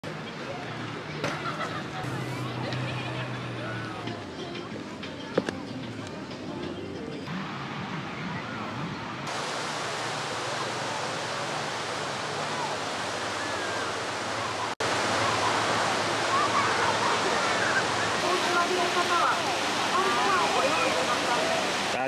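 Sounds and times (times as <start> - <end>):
distant voices: 0.1 - 22.0
small waves breaking: 9.3 - 22.0.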